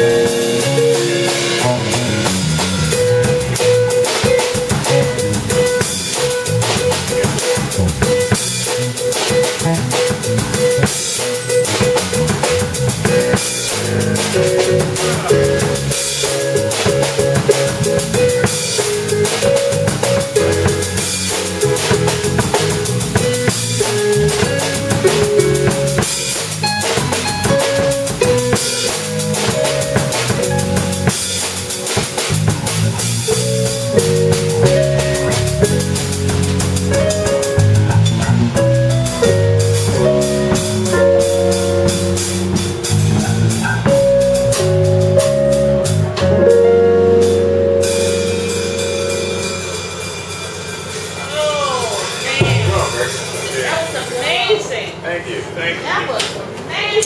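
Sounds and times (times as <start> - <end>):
keyboard piano chords: 0.0 - 51.4
electric bass line: 0.0 - 53.3
drum kit beat: 0.0 - 54.7.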